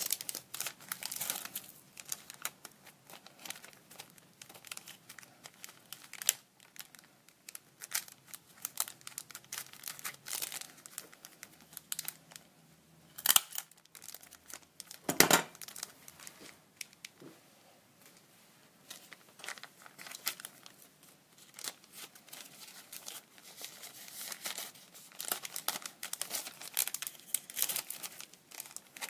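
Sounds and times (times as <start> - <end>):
plastic bag crinkling: 0.0 - 12.5, 13.2 - 17.1, 18.8 - 29.0.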